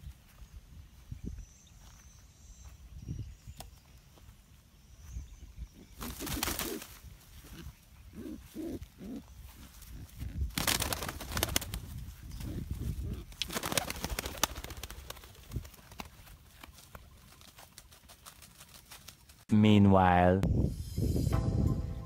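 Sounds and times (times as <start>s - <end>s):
footsteps in dry grass: 0.0s - 13.5s, 15.0s - 19.5s
pigeon cooing: 5.8s - 10.3s.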